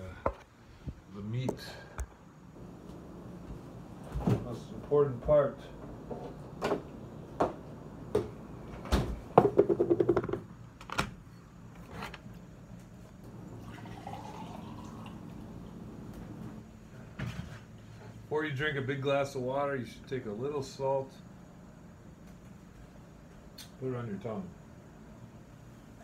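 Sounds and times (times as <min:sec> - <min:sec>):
refrigerator door knocks and rattle: 0:08.9 - 0:10.5
glass filling with water: 0:13.5 - 0:15.3.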